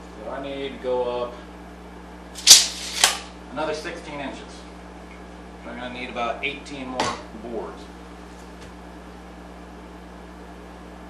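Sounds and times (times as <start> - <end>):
tape measure blade whirring: 2.4 - 3.3
tape measure clacking into case: 2.4 - 3.3.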